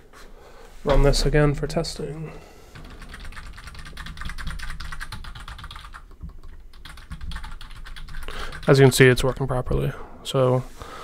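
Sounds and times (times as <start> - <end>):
computer keyboard typing: 2.8 - 9.4.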